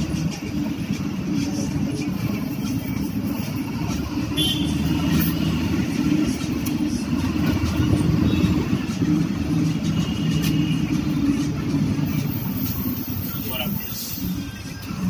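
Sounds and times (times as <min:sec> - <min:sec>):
bus engine and road rumble: 0:00.0 - 0:15.0.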